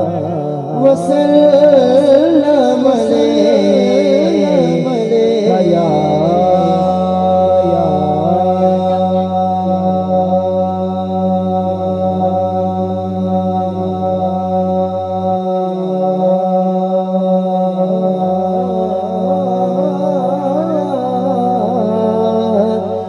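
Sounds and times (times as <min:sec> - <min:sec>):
low drone: 0:00.0 - 0:23.0
man singing drawn-out notes: 0:00.0 - 0:23.0.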